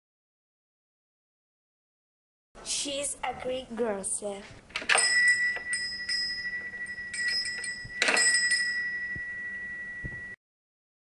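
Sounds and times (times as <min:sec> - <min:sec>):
small metal bell ringing: 0:04.9 - 0:10.4.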